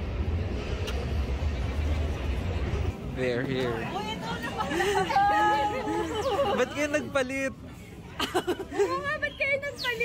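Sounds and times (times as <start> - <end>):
street noise low rumble: 0.0 - 10.0.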